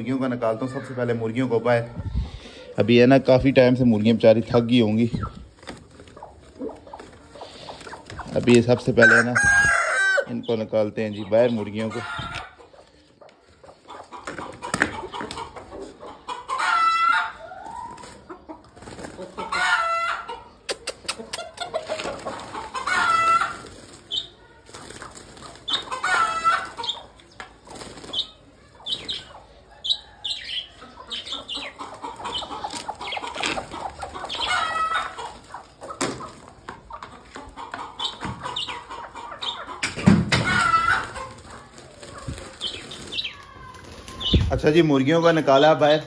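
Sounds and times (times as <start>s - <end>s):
chickens calling: 0.0s - 46.0s
wings flapping: 21.8s - 27.0s, 27.6s - 29.3s, 39.8s - 44.6s.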